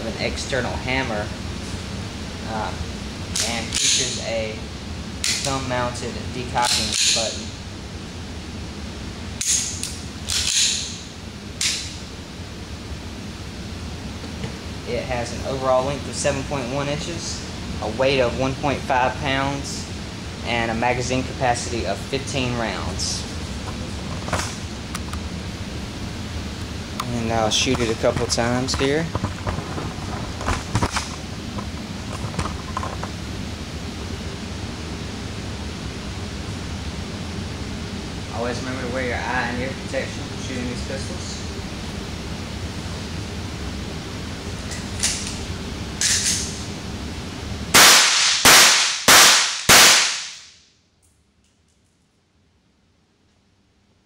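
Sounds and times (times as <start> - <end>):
room noise hiss: 0.0 - 54.0
pistol shots: 47.7 - 50.5.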